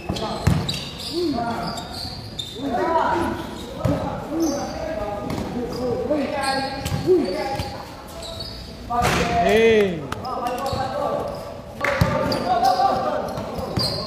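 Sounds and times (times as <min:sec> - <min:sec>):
basketball bouncing on floor: 0:00.1 - 0:00.8.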